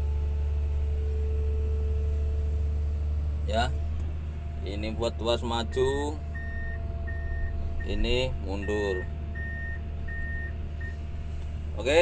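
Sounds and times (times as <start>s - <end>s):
engine low hum: 0.0s - 12.0s
excavator travel alarm beeping: 5.6s - 11.0s.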